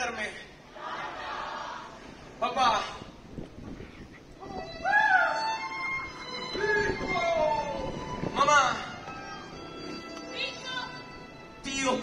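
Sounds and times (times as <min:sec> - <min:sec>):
faint hall ambience: 0:00.0 - 0:12.0.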